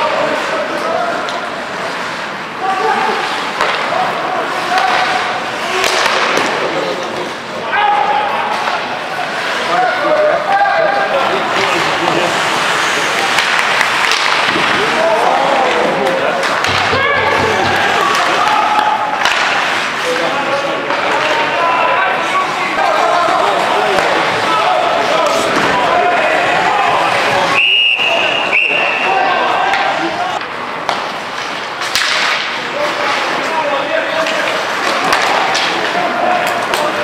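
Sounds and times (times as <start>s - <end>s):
hockey sticks and puck clacking: 0.0s - 37.0s
skates hissing on ice: 11.4s - 14.1s
referee's whistle blast: 27.6s - 29.1s.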